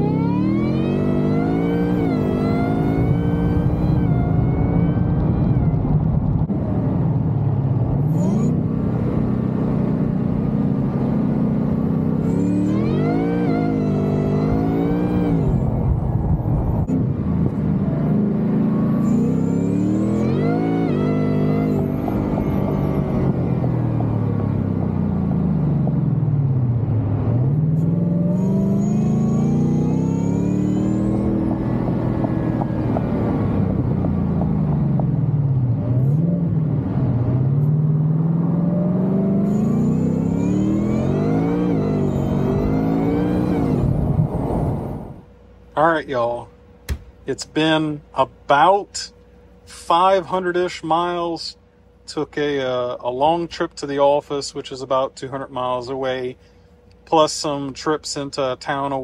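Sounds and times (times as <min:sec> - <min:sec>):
car engine revving: 0:00.0 - 0:46.0.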